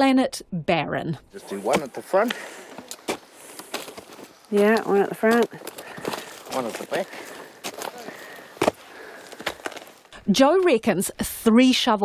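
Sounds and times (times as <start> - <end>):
spade striking into woody ground: 1.6 - 3.8.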